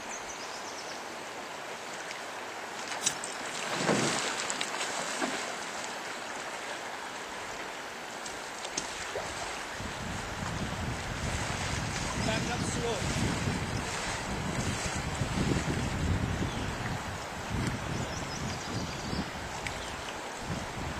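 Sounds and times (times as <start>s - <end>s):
fast river rushing: 0.0s - 18.3s.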